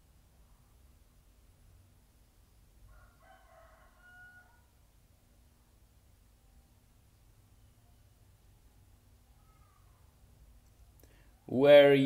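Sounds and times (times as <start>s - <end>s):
faint animal call: 9.2s - 10.2s.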